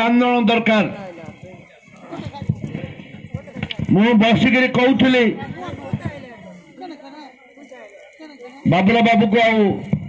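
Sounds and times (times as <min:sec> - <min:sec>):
man speaking into a microphone: 0:00.0 - 0:06.5, 0:07.6 - 0:10.0.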